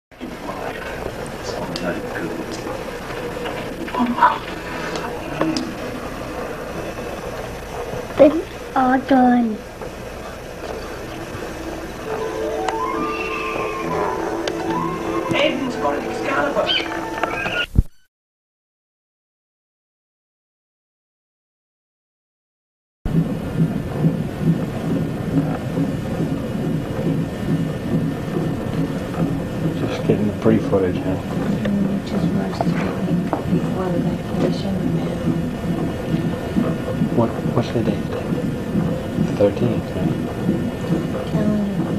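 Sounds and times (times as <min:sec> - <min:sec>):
fetal heartbeat whooshing pulse: 0:00.2 - 0:17.9, 0:23.1 - 0:41.9
room tone hiss and hum: 0:00.2 - 0:18.0, 0:23.1 - 0:41.9.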